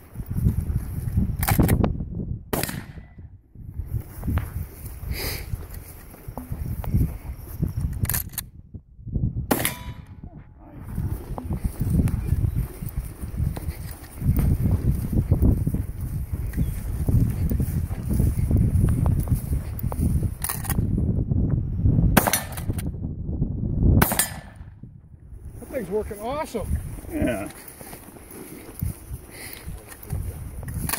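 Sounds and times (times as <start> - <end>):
shotgun shots: 2.5 - 3.2, 9.5 - 10.2, 22.2 - 22.7, 24.0 - 24.6.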